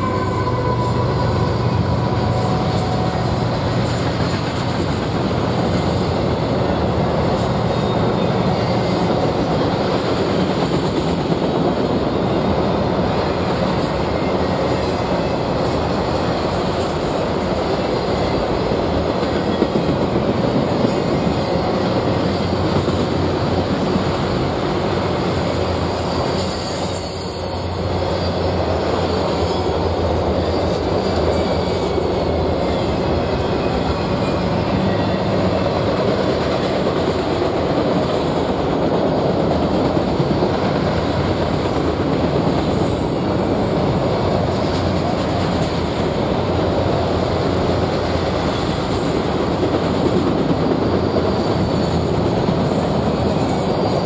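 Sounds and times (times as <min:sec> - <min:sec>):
freight train rumbling past: 0:00.0 - 0:54.0.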